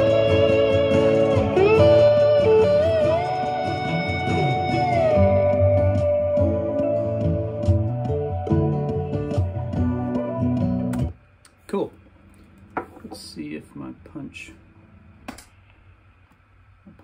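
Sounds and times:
song with electric guitar: 0.0 - 11.2.

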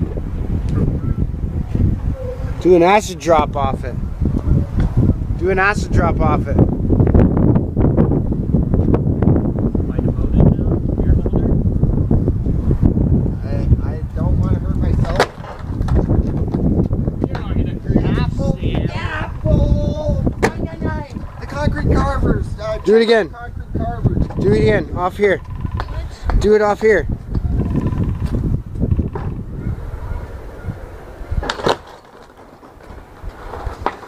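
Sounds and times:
skateboard wheels rumbling: 13.9 - 26.4, 27.2 - 34.0
skateboard clack: 14.9 - 16.6, 31.4 - 34.0.

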